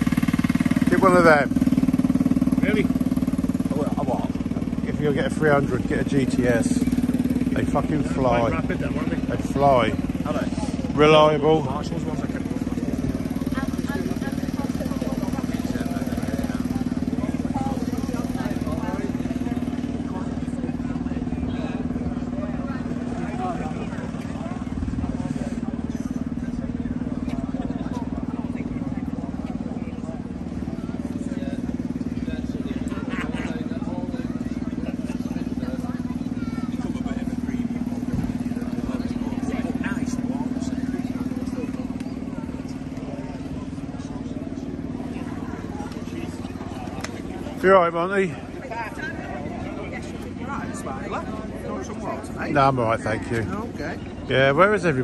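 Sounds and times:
crowd chatter: 0.0s - 55.0s
scooter engine idling: 0.0s - 55.0s.

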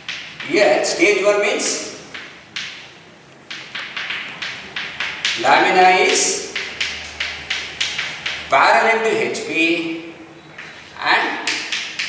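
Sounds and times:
chalk tapping and scratching: 0.0s - 1.0s, 3.5s - 9.4s, 10.6s - 12.0s.

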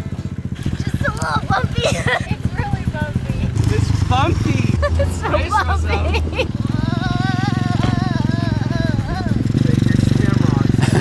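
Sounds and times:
dirt bike engine running: 0.0s - 11.0s
people calling out: 4.5s - 11.0s.

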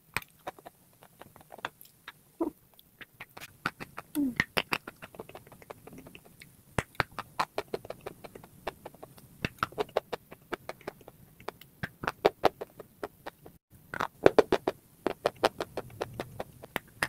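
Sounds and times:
mouth clicks: 0.2s - 17.0s.

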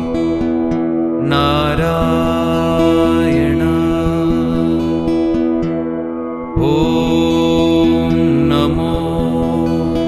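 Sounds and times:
background music: 0.0s - 10.0s
held drone: 0.0s - 10.0s.

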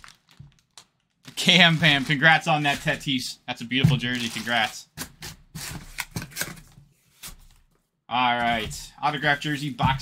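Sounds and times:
cardboard boxes knocking and rustling: 9.8s - 10.0s.

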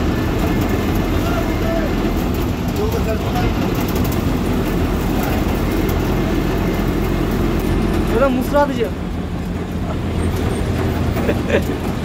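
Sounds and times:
road noise: 0.0s - 12.0s
truck diesel engine: 0.0s - 12.0s.

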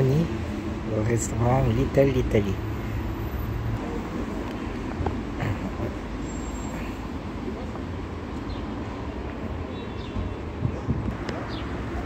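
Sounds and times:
traffic rumble: 0.0s - 12.0s.

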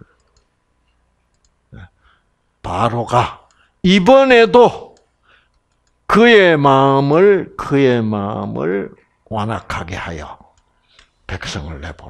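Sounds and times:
soft computer mouse clicks: 0.0s - 1.6s, 3.4s - 3.6s, 4.9s - 6.1s, 10.5s - 11.2s.

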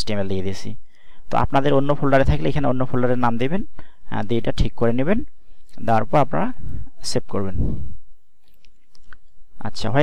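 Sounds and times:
man talking: 0.0s - 7.9s, 9.6s - 10.0s.

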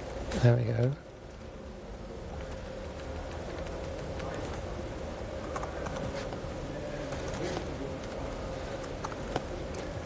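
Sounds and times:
steady low hum: 0.0s - 10.0s
laptop keyboard clicks: 5.5s - 6.1s, 8.8s - 9.9s.

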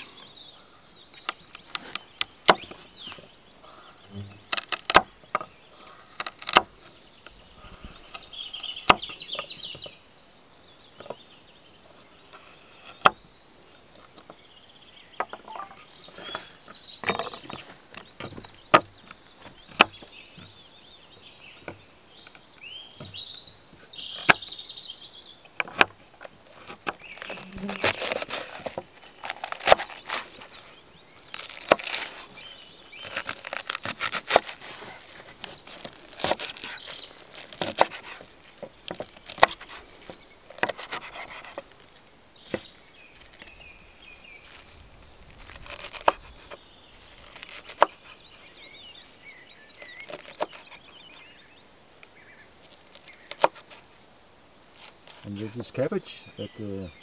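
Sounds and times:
crunching of cabbage being cut: 1.3s - 3.4s, 4.3s - 7.0s, 7.6s - 9.9s, 25.6s - 41.8s, 42.4s - 48.5s, 49.6s - 51.4s, 52.6s - 53.9s.

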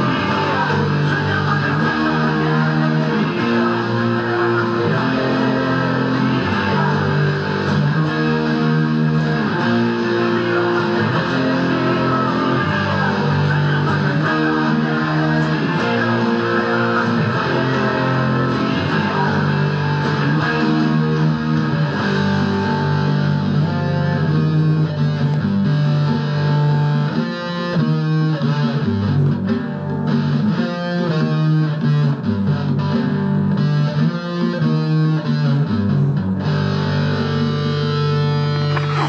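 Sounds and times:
electric guitar riffs: 0.0s - 39.0s.

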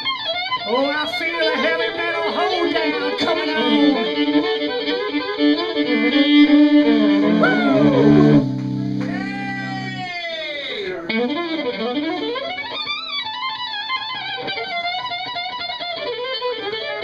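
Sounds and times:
fiddle solo: 0.0s - 10.4s, 11.1s - 17.0s.

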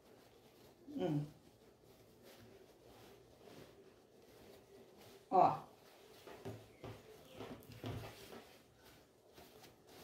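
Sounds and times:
fabric bag rustling: 0.0s - 10.0s.

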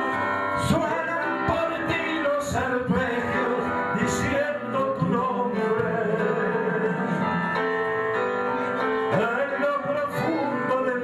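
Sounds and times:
instrumental accompaniment: 0.0s - 11.0s
men singing: 0.6s - 7.4s.

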